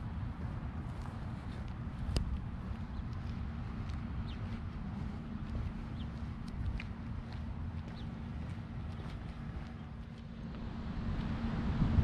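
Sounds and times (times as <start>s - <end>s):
faint steady hum: 0.0s - 12.0s
wind rumble on microphone: 0.0s - 12.0s.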